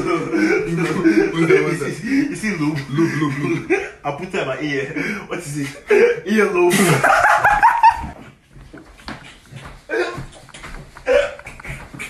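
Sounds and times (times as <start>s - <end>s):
young men laughing: 0.0s - 9.0s.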